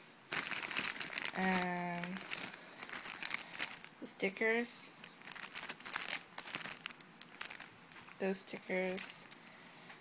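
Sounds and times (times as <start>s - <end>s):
plastic bags crinkling: 0.3s - 4.1s, 4.9s - 9.4s.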